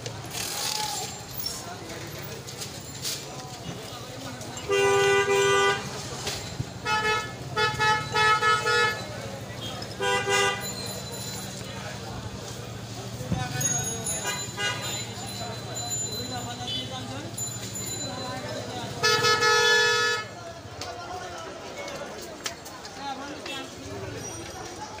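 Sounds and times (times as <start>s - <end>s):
low traffic hum: 0.0s - 24.8s
vehicle horns honking: 4.6s - 10.9s, 14.1s - 15.2s, 16.5s - 17.1s, 18.9s - 20.4s.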